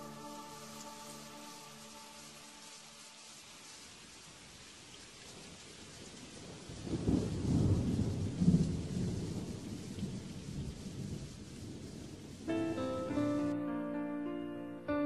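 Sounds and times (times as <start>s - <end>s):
rain hiss: 0.0s - 14.4s
rolling thunder rumble: 5.4s - 13.5s.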